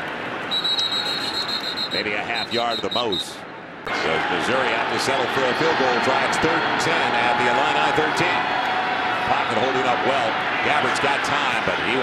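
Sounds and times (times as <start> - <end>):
stadium crowd noise: 0.0 - 12.0
referee's whistle trilling: 0.5 - 3.4.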